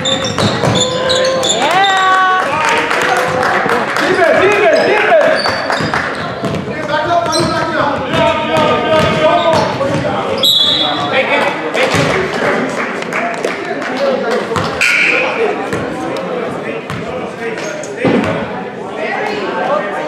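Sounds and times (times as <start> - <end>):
sneakers squeaking: 0.0 - 2.3, 4.6 - 12.1, 16.8 - 18.5
ball bouncing on hardwood: 5.8 - 10.1.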